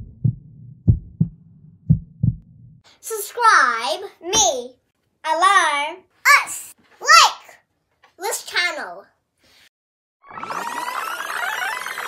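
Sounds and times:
heartbeat thumps: 0.0 - 2.8.

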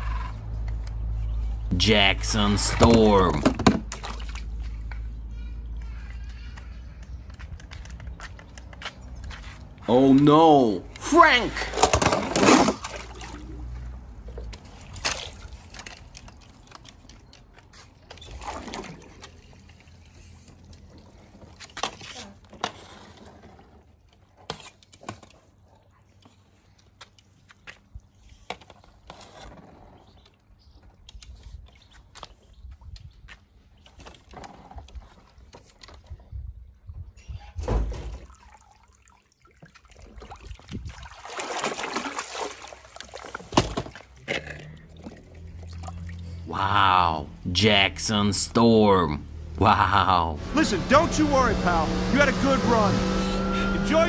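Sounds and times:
water splashing in a pool: 2.2 - 6.6, 9.6 - 36.1, 37.9 - 46.9.

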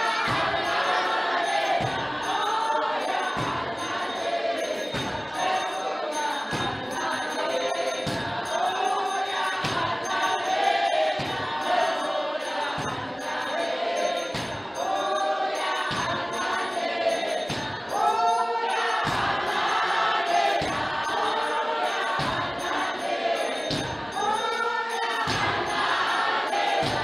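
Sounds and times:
congregation singing: 0.0 - 27.0.

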